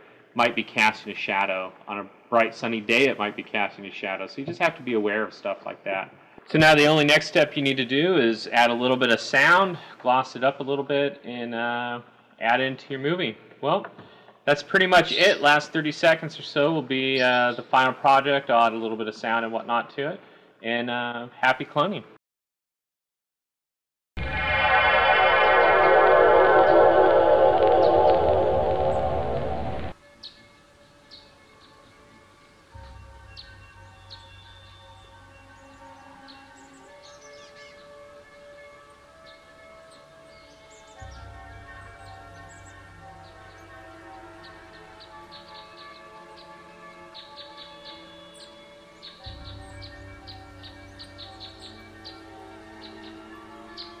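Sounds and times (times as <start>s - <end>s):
shimmering sci-fi sound effect: 24.2s - 30.0s
soft synth background music: 24.5s - 54.0s.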